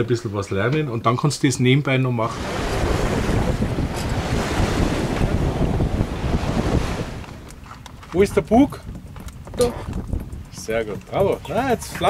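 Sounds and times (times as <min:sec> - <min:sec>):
water rushing along a hull: 0:02.2 - 0:12.0
wind buffeting the microphone: 0:02.2 - 0:12.0.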